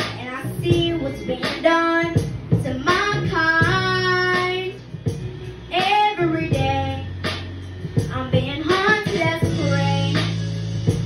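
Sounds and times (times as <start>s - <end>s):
boy singing into microphone: 0.0s - 4.8s, 5.7s - 7.1s, 8.0s - 10.4s
backing track of low chords: 0.0s - 11.0s.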